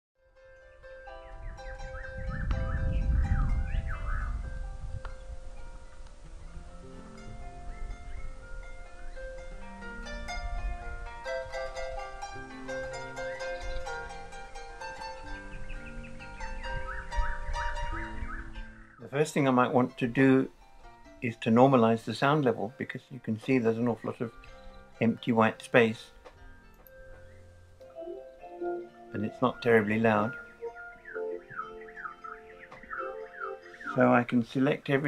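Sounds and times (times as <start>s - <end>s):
harp music: 0.2s - 35.0s.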